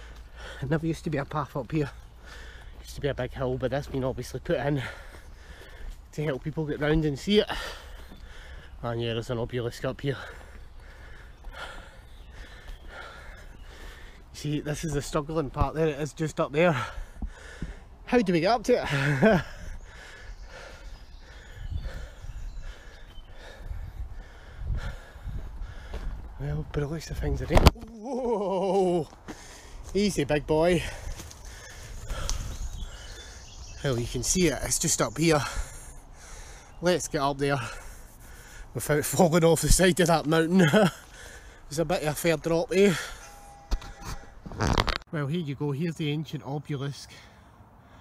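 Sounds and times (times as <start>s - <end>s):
man breathing hard: 0.0s - 0.8s, 2.0s - 2.8s, 4.8s - 6.1s, 7.4s - 8.8s, 10.1s - 14.4s, 16.7s - 18.1s, 18.9s - 26.4s, 29.1s - 30.0s, 30.8s - 33.7s, 35.3s - 36.8s, 37.5s - 38.8s, 40.9s - 41.7s
faint steady tone: 42.9s - 44.4s.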